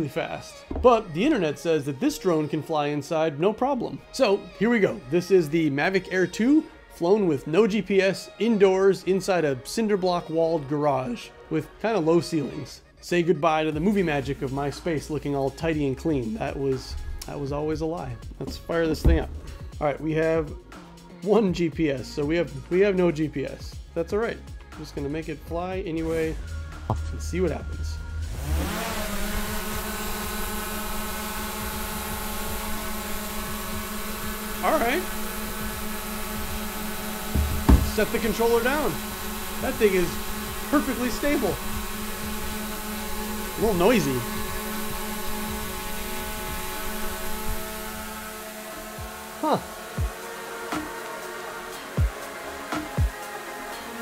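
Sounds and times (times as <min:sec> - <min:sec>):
drone propeller whine: 0:28.2 - 0:53.6.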